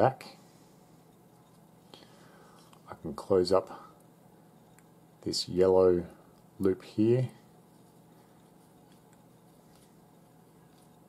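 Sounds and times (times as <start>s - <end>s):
person speaking: 2.8s - 4.0s, 5.2s - 8.0s.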